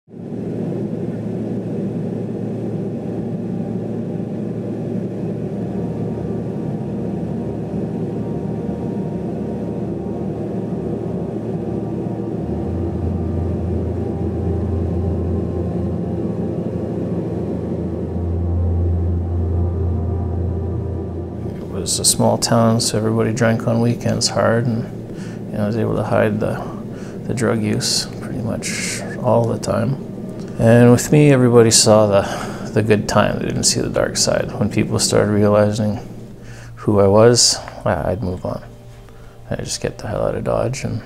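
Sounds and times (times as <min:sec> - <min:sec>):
deeper drone: 0:00.0 - 0:41.0
aircraft cabin engine rumble: 0:00.1 - 0:41.0.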